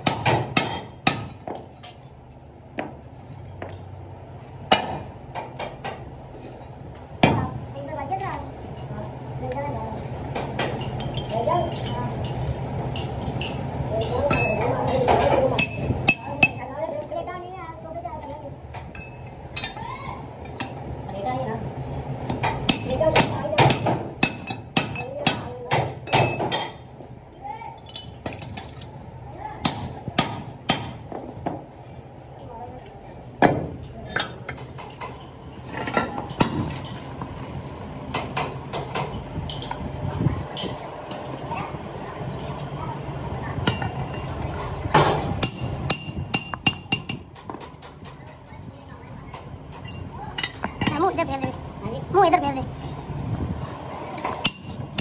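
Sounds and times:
hammer striking metal: 0.0s - 1.6s, 22.3s - 26.8s, 29.6s - 31.6s, 43.6s - 47.6s, 54.2s - 55.0s
steady low hum: 0.0s - 55.0s.

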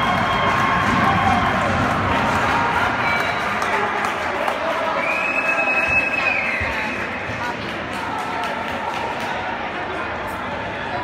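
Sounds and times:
crowd voices and cheering: 0.0s - 11.0s
referee whistle: 5.0s - 7.2s.

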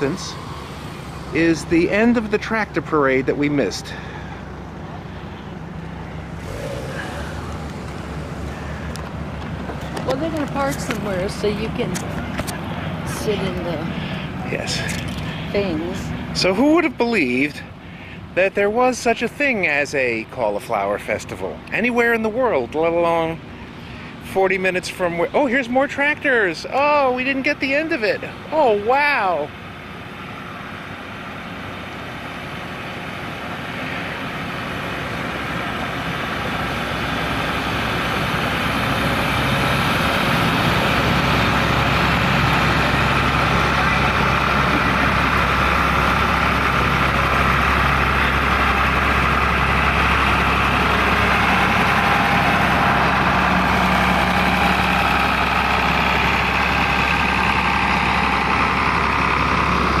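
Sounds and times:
tractor engines running: 0.0s - 60.0s.

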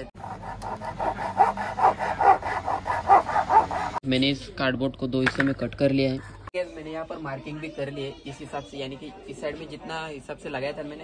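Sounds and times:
blade sawing through cardboard: 0.0s - 4.0s.

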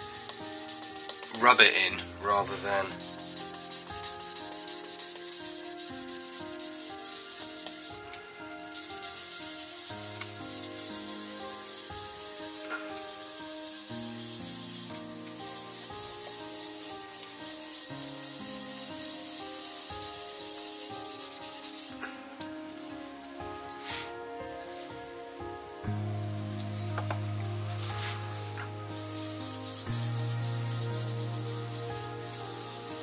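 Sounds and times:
cloth rubbing spinning wooden bowl: 0.0s - 22.0s, 27.7s - 33.0s
soft background music: 0.0s - 33.0s.

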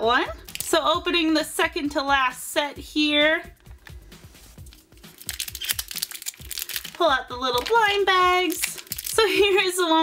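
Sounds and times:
background music with steady beat: 0.0s - 10.0s
foil wrappers crinkling: 4.7s - 9.4s.

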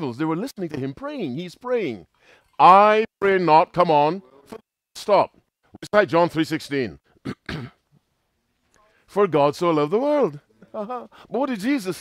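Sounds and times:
man coughing: 7.2s - 7.9s.

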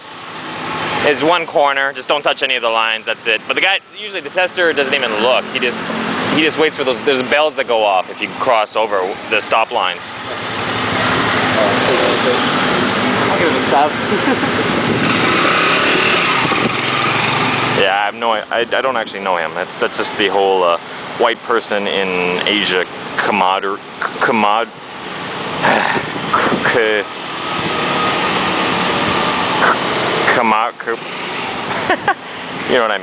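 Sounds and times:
motorcycle engine running: 0.0s - 23.3s, 24.8s - 33.0s.

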